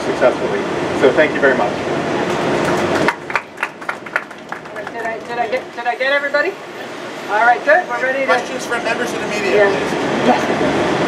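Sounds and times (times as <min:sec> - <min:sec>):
people applauding: 0:02.2 - 0:06.0.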